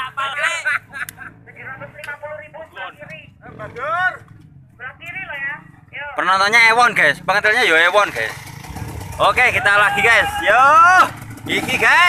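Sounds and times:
men talking and calling out: 0:00.0 - 0:12.0.

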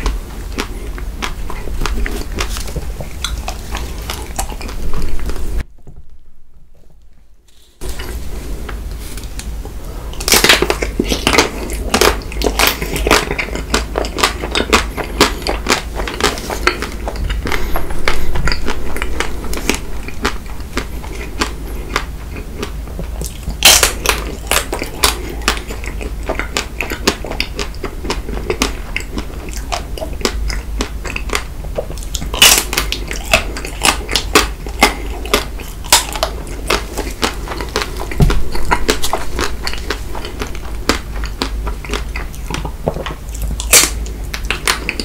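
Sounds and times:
crisp crunching while chewing: 0:00.0 - 0:05.6, 0:07.5 - 0:45.0.

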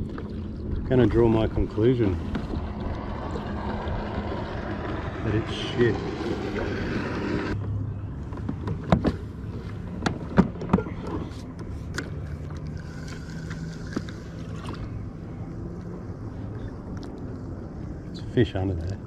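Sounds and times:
reel whirring: 0:01.1 - 0:07.6, 0:11.5 - 0:18.1.

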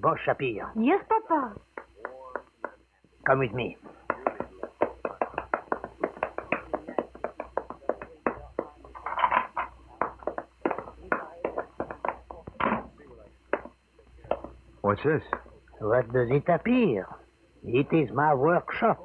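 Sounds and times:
people walking quickly: 0:01.7 - 0:14.6.

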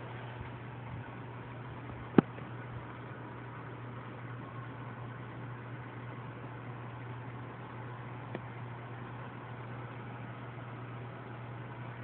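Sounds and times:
aquarium equipment humming: 0:00.0 - 0:12.0.

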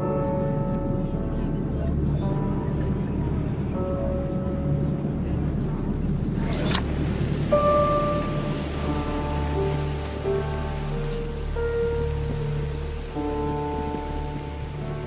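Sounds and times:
background music with drone: 0:00.0 - 0:15.0.

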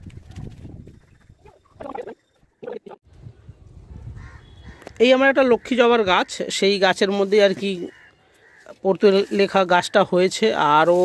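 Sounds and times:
hands rustling dry soil: 0:06.7 - 0:11.0.

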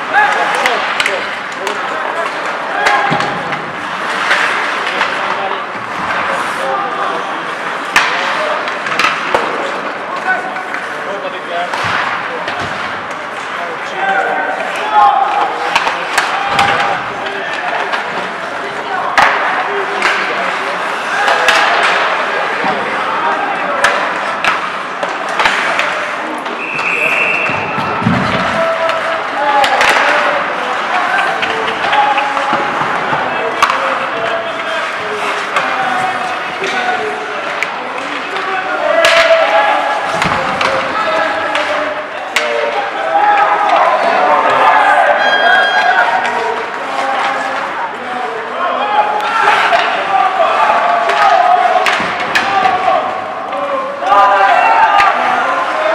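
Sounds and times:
hockey sticks and pucks clacking: 0:00.0 - 0:55.9
players calling out: 0:00.0 - 0:55.9
short high whistle: 0:26.6 - 0:27.6.

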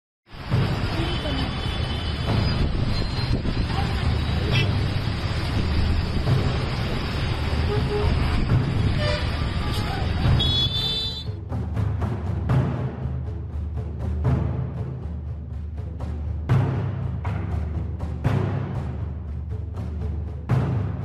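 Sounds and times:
traffic passing: 0:00.3 - 0:11.3
car horn toots: 0:07.7 - 0:08.3, 0:08.9 - 0:11.3.

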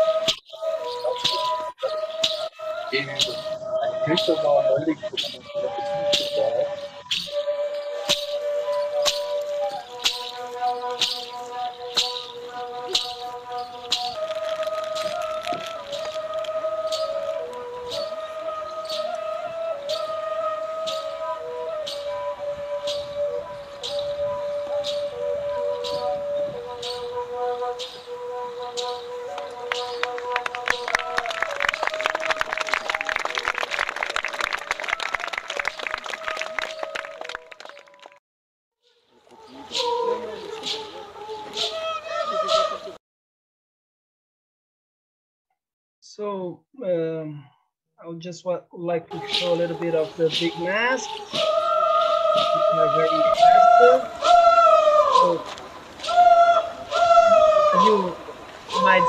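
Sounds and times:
flute-like wind instruments: 0:00.0 - 0:38.2, 0:38.9 - 0:43.0, 0:48.8 - 0:59.0.

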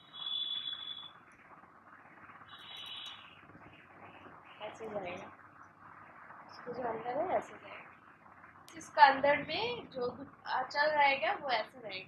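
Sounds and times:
high-pitched squeals: 0:02.5 - 0:04.6.

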